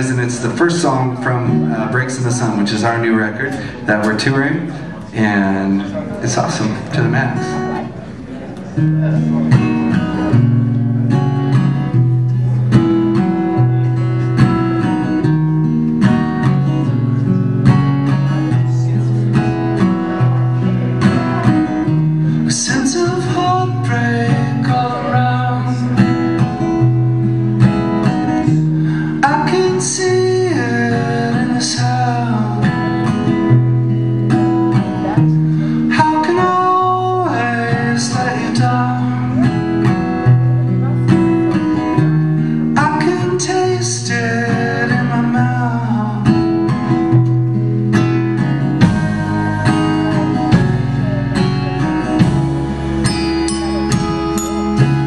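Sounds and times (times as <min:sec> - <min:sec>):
acoustic guitar strumming: 0:00.0 - 0:55.0
higher melody line: 0:47.5 - 0:55.0.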